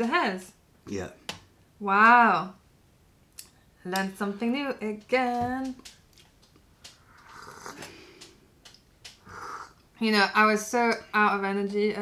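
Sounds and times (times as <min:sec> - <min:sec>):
slurping sip of tea: 0:07.1 - 0:07.9, 0:09.2 - 0:09.8.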